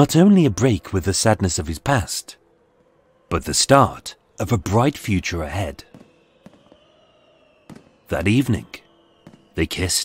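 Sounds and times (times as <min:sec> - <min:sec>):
distant fireworks popping: 0:05.8 - 0:10.0.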